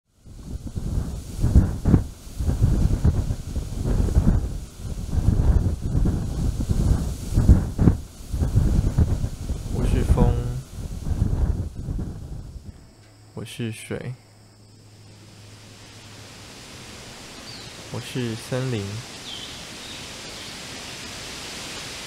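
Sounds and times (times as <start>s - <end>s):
wind gusting across microphone: 0.0s - 14.0s, 14.6s - 22.0s.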